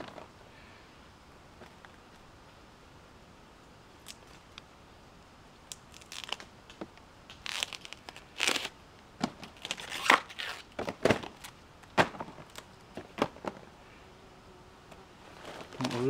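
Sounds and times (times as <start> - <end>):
banana flower bracts being torn: 4.0 - 4.6, 5.7 - 8.8, 9.4 - 12.7.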